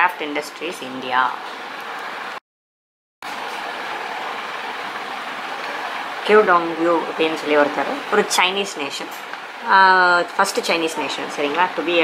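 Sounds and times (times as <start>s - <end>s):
steady background hiss: 3.4s - 12.0s.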